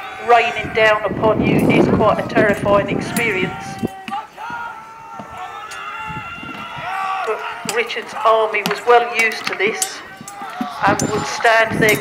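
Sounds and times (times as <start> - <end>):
men shouting drawn-out yells: 0.0 - 12.0
running feet on grass: 0.0 - 12.0.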